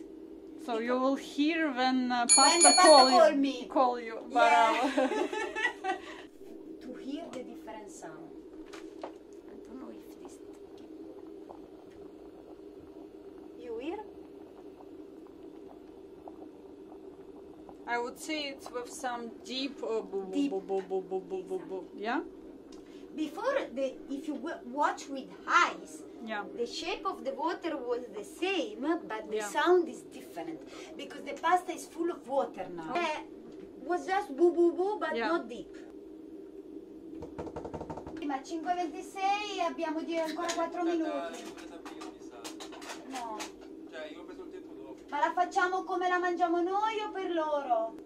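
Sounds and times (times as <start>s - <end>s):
faint steady hum: 0.0s - 48.0s
pot of water boiling hard: 3.3s - 48.0s
faint bubble pops: 8.6s - 19.0s.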